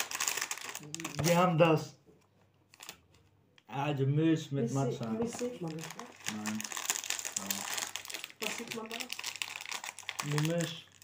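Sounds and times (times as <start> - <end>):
snack wrapper crinkling: 0.0 - 1.5, 2.7 - 3.2, 5.4 - 11.0.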